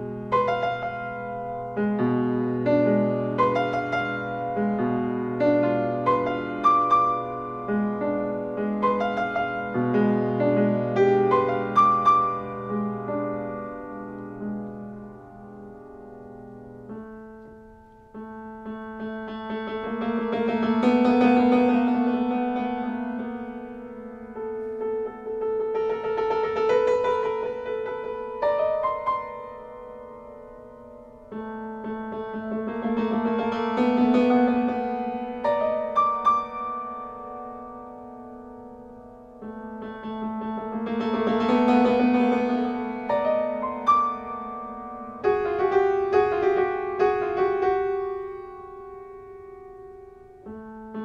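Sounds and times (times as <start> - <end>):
solo piano: 0.0 - 51.0.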